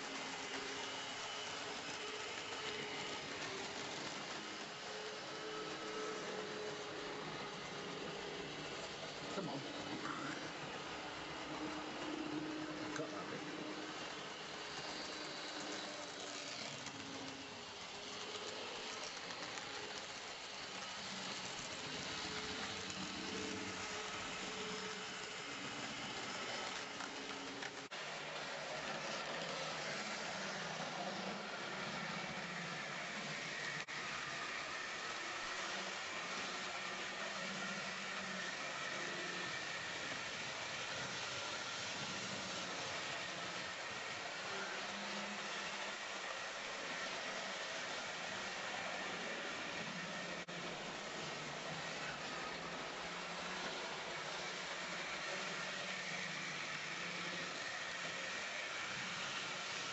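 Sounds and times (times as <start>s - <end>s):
model train motor whirring: 0.0s - 59.9s.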